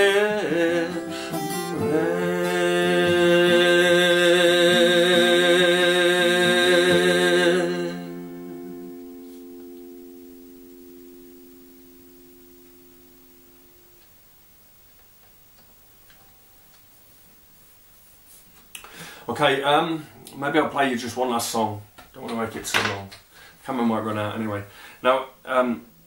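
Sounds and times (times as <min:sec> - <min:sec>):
acoustic guitar chord ringing: 0:00.0 - 0:14.0.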